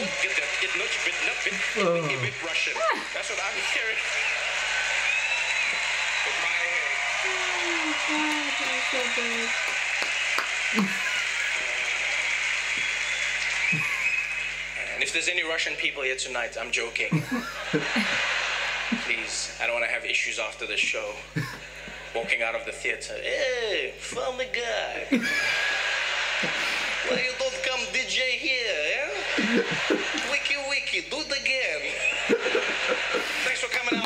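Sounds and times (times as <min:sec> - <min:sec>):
audience applauding: 0:00.0 - 0:15.5, 0:25.3 - 0:27.8, 0:29.2 - 0:30.6, 0:32.0 - 0:34.0.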